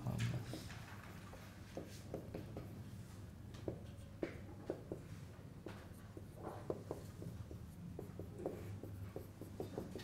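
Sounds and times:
marker writing on whiteboard: 0.4s - 2.8s, 3.6s - 10.0s.

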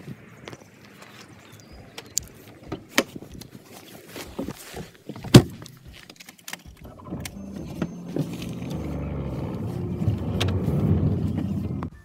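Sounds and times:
car door unlatching and opening: 6.8s - 11.9s
low rustle: 7.6s - 11.9s.

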